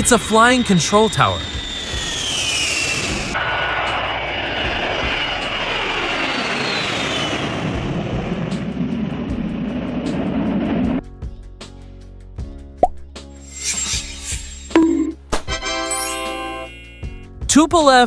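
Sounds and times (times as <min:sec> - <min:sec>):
jet flying past overhead: 0:00.0 - 0:11.0
light background music: 0:08.5 - 0:18.0.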